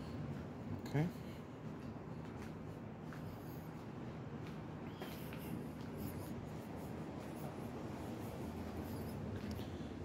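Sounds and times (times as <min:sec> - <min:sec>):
low city hum: 0:00.0 - 0:10.0.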